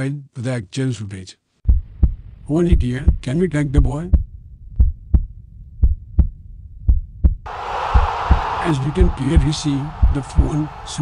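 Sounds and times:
heartbeat thumps: 1.7 - 11.0
man's voice: 8.6 - 11.0.

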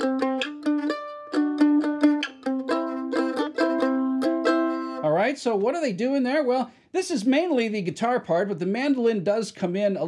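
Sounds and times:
mandolin chord strumming: 0.0 - 5.1.

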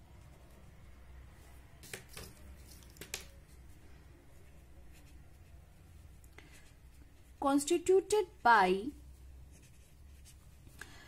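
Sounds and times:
pen scratching on paper: 9.5 - 10.6.

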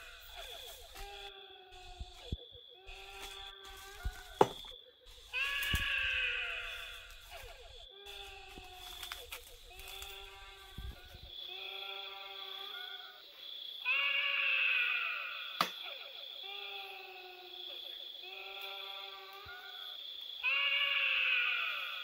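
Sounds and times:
drawn-out wavering cries: 0.0 - 22.0.

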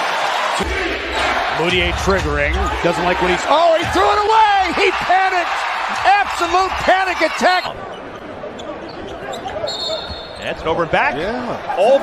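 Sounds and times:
arena crowd noise: 0.0 - 12.0
referee's whistle: 9.4 - 10.5.

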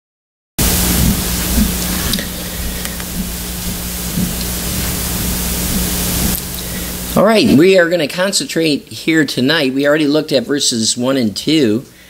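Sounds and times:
low electrical hum: 0.6 - 12.0
microphone hiss: 0.6 - 12.0.

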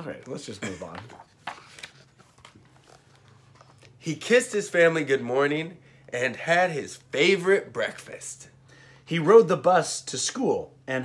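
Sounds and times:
book handling rustles and clicks: 0.0 - 4.0
faint low room hum: 0.0 - 11.0.

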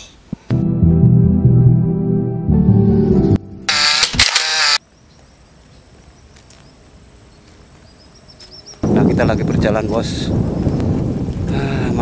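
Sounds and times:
quiet outdoor background: 0.0 - 12.0
low sustained music chord: 0.5 - 3.7.

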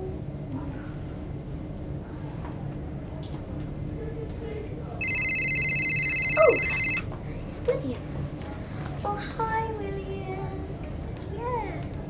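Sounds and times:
mobile phone ringtone trilling: 5.0 - 7.0.

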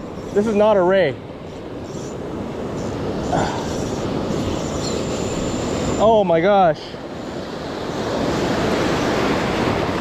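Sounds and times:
ocean waves breaking: 0.0 - 10.0.

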